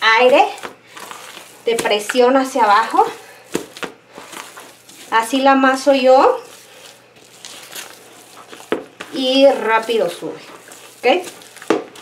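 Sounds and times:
hand slapping dough: 0:00.0 - 0:12.0.

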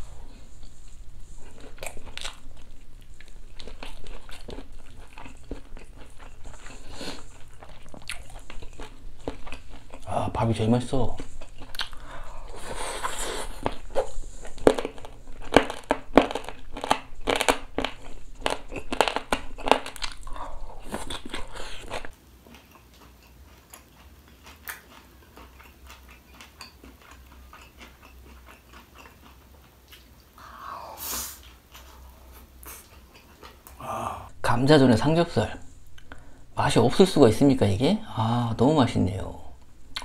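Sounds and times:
close chewing and mouth sounds: 0:00.0 - 0:34.0.

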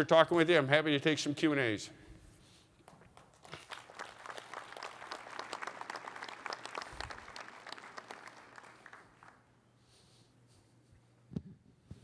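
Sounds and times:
audience applauding: 0:02.9 - 0:09.5.

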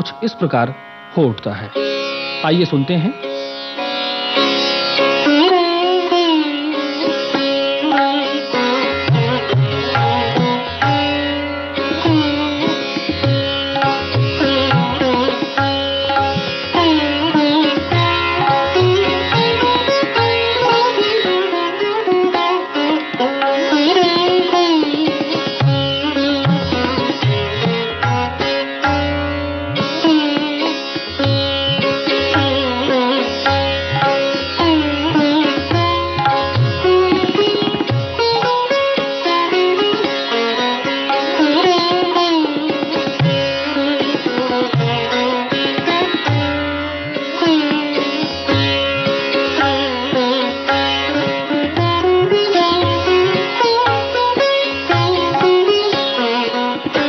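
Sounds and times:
sitar playing: 0:00.0 - 0:57.0.

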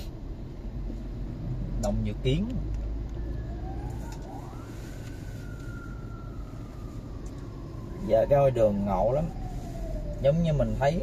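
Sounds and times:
road traffic rumble from inside car: 0:00.0 - 0:11.0
faint whining tone: 0:01.6 - 0:11.0.

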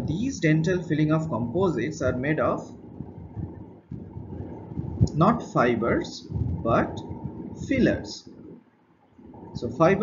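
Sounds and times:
low uneven rumbling: 0:00.0 - 0:10.0.

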